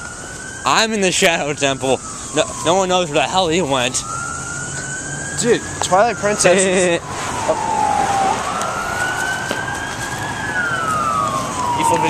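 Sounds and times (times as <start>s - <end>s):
ambulance siren wailing: 0.0s - 12.0s.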